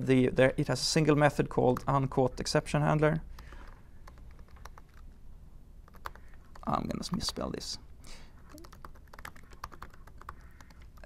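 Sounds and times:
typing on computer keyboard: 3.4 - 5.1, 5.9 - 6.7, 8.5 - 11.0.

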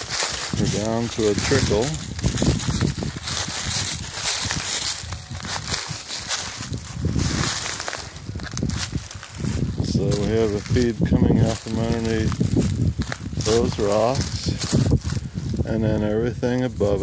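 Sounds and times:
footsteps on dry leaves and gravel: 0.0 - 17.0
low rumble on microphone: 0.0 - 17.0.

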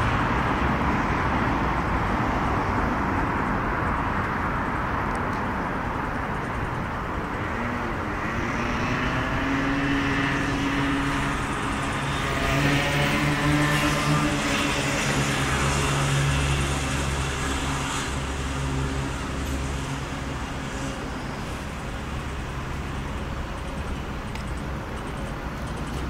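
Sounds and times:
cars passing: 0.0 - 26.0.

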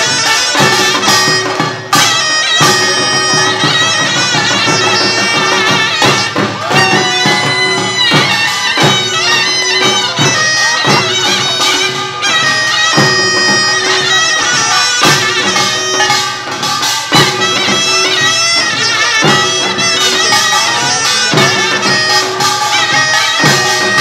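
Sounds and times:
drums: 0.0 - 24.0
gongs: 0.0 - 24.0
shawm playing wavering melody: 0.0 - 24.0.

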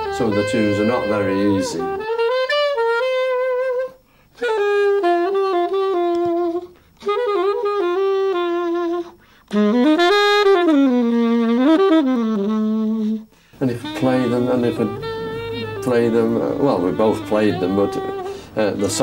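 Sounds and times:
solo saxophone melody: 0.0 - 19.0
breaths: 4.0 - 4.4, 9.2 - 9.5, 13.2 - 13.6, 18.3 - 18.6.

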